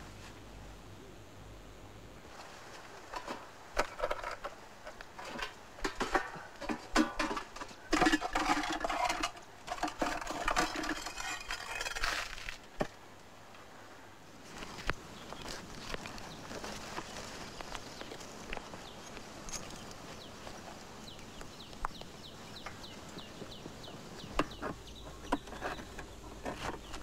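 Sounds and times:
small hard objects clattering: 3.1s - 12.9s, 14.6s - 22.8s.

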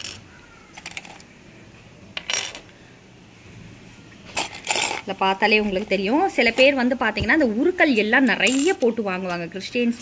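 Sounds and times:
metal jewellery jingling: 8.4s - 8.9s.

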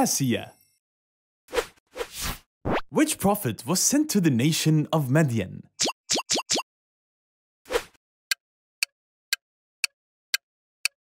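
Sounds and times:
rising-pitch pops: 5.8s - 6.6s.

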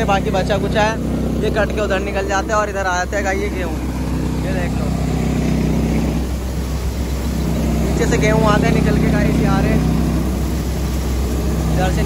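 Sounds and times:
threshing machine rushing noise: 0.0s - 12.0s
tractor engine hum: 0.0s - 12.0s.

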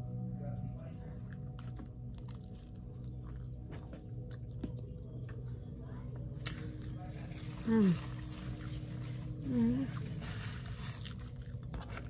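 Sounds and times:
steady low hum: 0.0s - 12.0s
person chewing food: 1.2s - 5.6s, 10.0s - 12.0s.

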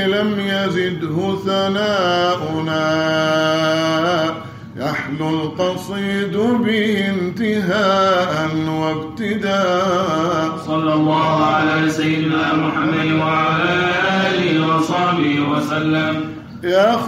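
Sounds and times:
men singing devotional song: 0.0s - 17.0s.

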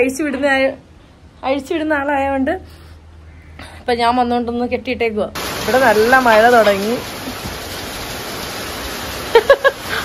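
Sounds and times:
heavy rain on paving and roof: 5.4s - 10.0s.

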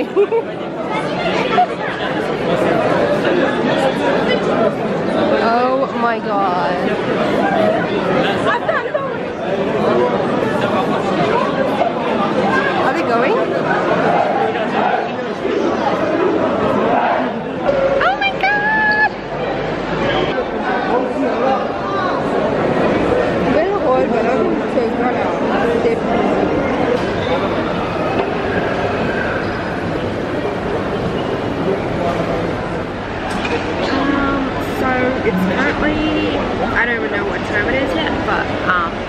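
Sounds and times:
crowd chatter in a hall: 0.0s - 39.0s
shopping mall hubbub: 0.0s - 39.0s.

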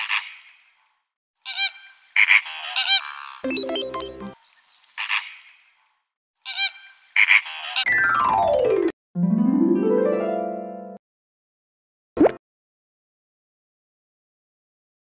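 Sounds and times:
flamingos honking: 1.5s - 3.4s.

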